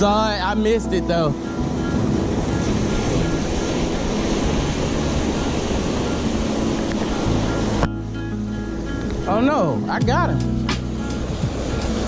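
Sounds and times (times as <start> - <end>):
surf breaking on rocks: 0.0 - 7.9
wind buffeting microphone: 0.0 - 12.0.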